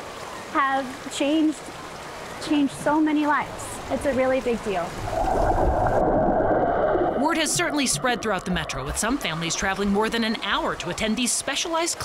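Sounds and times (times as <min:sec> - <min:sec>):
muffled underwater water rushing: 0:02.0 - 0:11.6.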